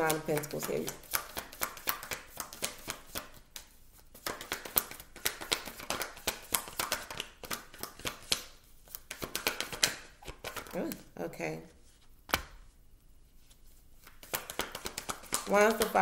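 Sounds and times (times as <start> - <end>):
cards being shuffled by hand: 0.0 - 11.2, 13.3 - 16.0.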